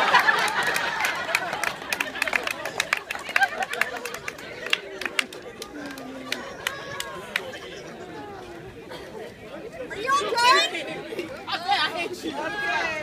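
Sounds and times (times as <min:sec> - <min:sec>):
people talking: 0:00.0 - 0:13.0.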